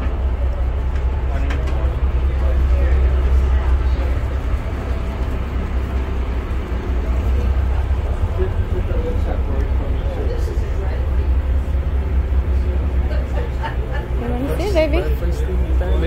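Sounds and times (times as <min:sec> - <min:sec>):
boat engine rumble: 0:00.0 - 0:16.0
passengers talking: 0:00.0 - 0:16.0.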